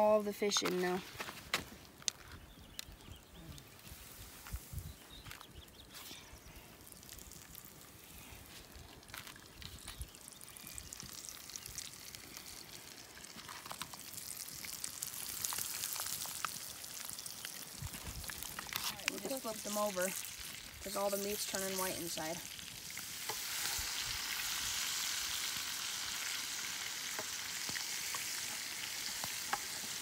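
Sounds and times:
fish sizzling in a pan: 6.4 - 30.0.

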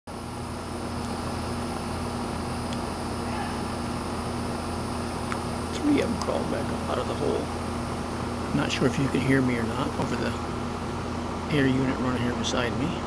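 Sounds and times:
air conditioner humming: 0.1 - 13.0
person speaking: 5.7 - 7.6, 8.4 - 10.5, 11.5 - 13.0.

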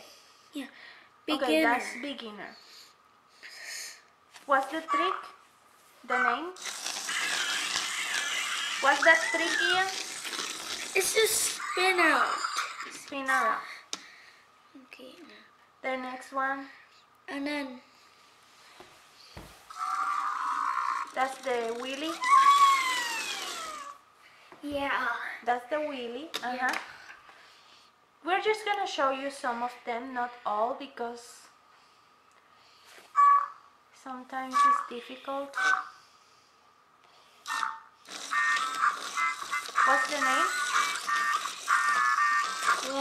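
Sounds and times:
toy robot electronic sound: 6.6 - 11.7, 20.8 - 24.0, 37.5 - 43.0
robot toy electronic beeps and chirps: 37.5 - 43.0.

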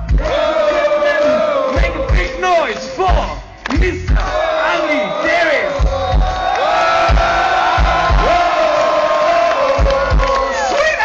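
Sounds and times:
crowd shouting and singing: 0.0 - 11.0
heavy drum beats: 0.0 - 11.0.

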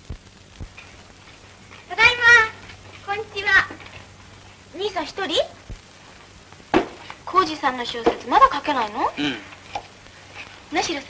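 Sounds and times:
film soundtrack hum and hiss: 0.0 - 11.0.

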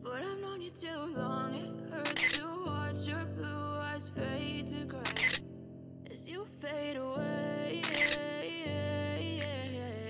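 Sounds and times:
background music: 0.0 - 10.0
camera shutter click: 2.0 - 2.4, 5.0 - 5.4, 7.8 - 8.2.

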